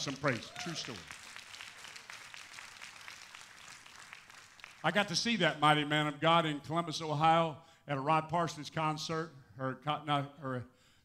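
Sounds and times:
congregation applauding: 0.0 - 5.5.

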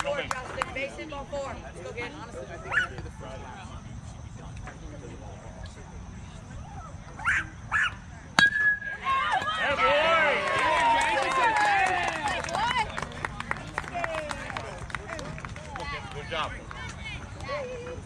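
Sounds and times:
metal bat hitting ball: 8.4 - 8.9
voices yelling and cheering: 8.9 - 18.0.

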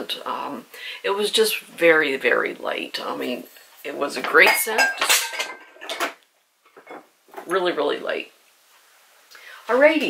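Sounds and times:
glass jars clinking: 4.3 - 6.2.

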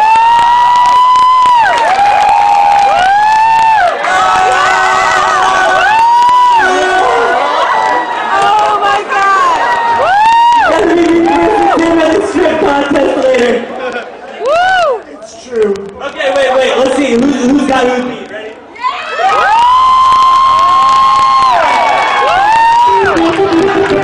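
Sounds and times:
crowd cheering: 0.0 - 12.2, 18.8 - 24.0.

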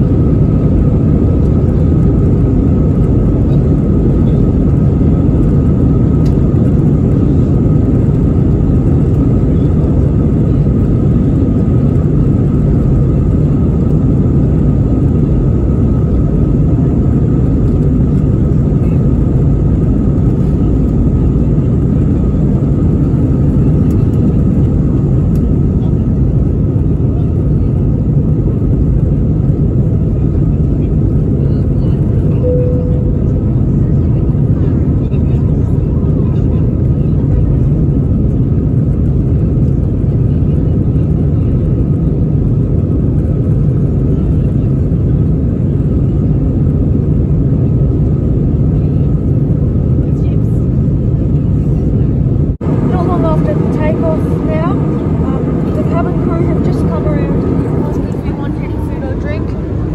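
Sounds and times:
jet engine rumble and whine: 0.0 - 59.9
short cabin tone: 32.3 - 33.6.

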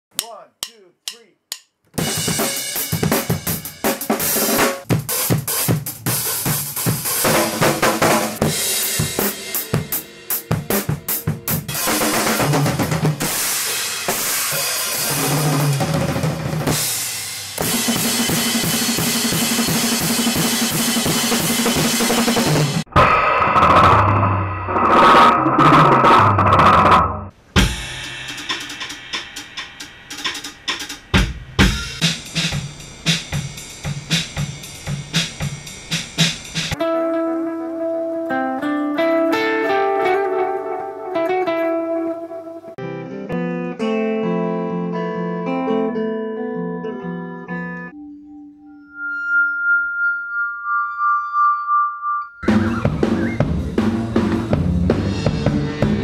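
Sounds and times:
drum kit: 0.1 - 37.0, 52.4 - 56.0
electric bass: 22.4 - 27.3, 52.4 - 56.0
electric guitar: 36.8 - 48.7, 52.5 - 56.0.

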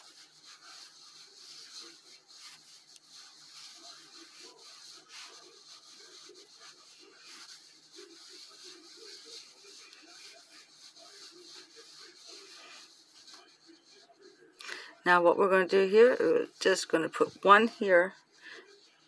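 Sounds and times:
yarn rubbing over crochet hook: 0.0 - 19.0.

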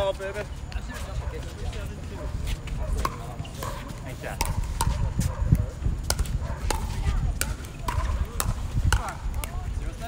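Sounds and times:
paddles hitting plastic ball: 4.3 - 5.0
faint voices: 6.4 - 10.0.

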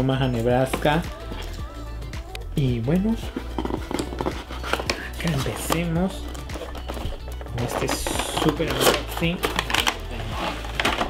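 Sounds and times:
plastic packaging clicks and crinkles: 3.6 - 11.0.

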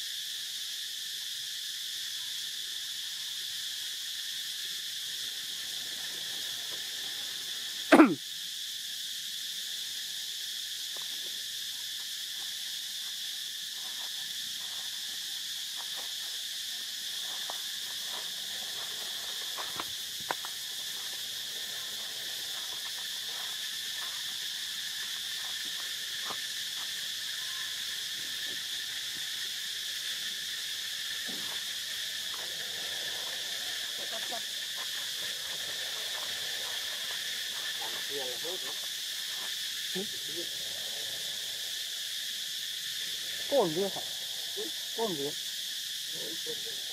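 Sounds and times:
insect chorus drone: 0.0 - 46.9.

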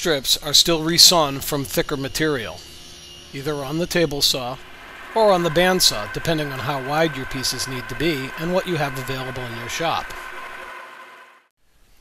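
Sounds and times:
bandsaw running: 1.5 - 11.5.

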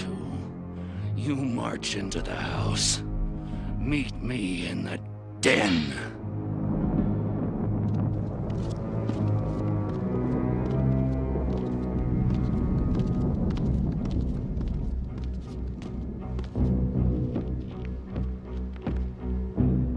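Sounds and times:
ominous cartoon music: 0.0 - 19.9.

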